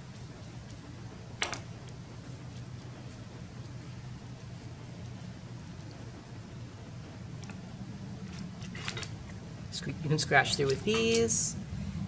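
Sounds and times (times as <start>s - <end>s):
low room hum: 0.0s - 12.0s
tools clicking and rustling: 10.6s - 11.4s.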